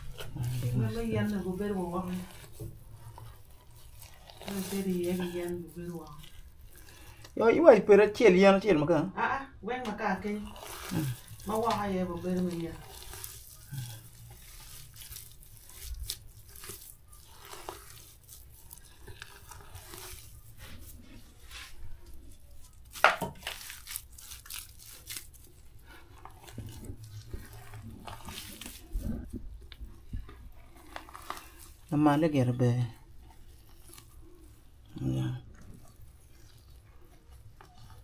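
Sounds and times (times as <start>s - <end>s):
handling rustling and crunching: 0.0s - 8.6s, 9.7s - 38.0s.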